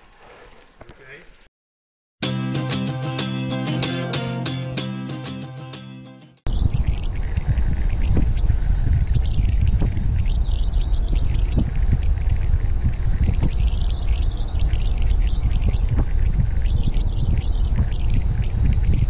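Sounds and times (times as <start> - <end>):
wind buffeting microphone: 6.5 - 19.0.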